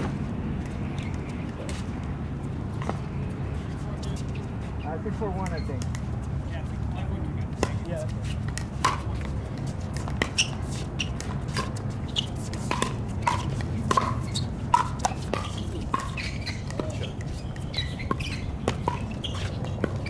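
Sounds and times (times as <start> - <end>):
ball bouncing on hard court: 7.6 - 20.0.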